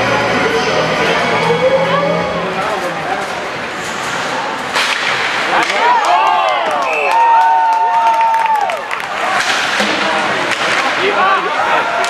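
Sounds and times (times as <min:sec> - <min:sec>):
hockey stick striking puck: 0:04.7 - 0:05.8, 0:09.2 - 0:11.2
crowd shouting: 0:05.5 - 0:12.0.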